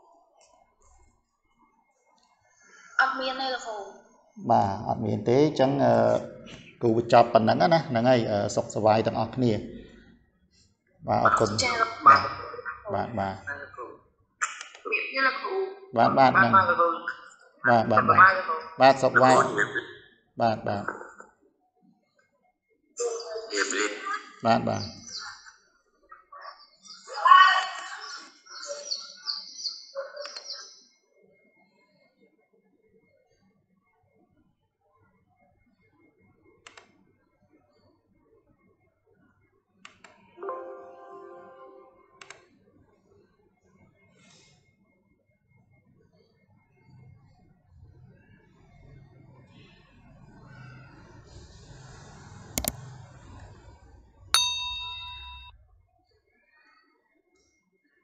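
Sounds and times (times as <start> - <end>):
small bird chirping: 24.5 - 31.0
electronic notification ding: 40.4 - 42.1, 54.4 - 55.5.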